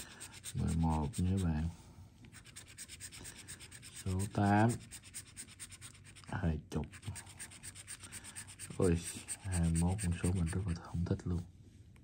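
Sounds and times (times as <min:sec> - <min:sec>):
tool scraping scratch-off ticket: 0:00.0 - 0:01.7, 0:02.3 - 0:10.8.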